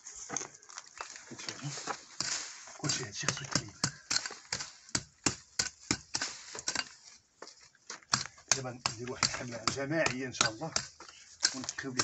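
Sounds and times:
hand tool chopping stony soil: 1.4 - 7.2, 7.9 - 12.0.

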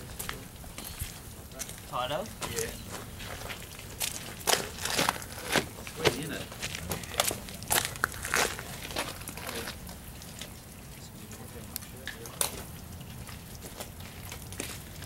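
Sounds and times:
gravel crunching: 0.0 - 15.0.

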